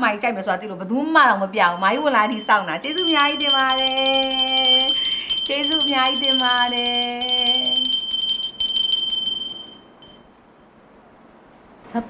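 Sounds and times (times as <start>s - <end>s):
handbell ringing rapidly: 1.6s - 10.2s.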